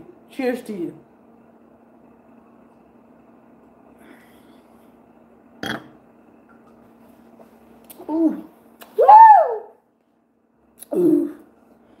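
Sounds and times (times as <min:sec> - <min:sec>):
low room hum: 0:00.0 - 0:12.0
woman burping: 0:05.6 - 0:05.9.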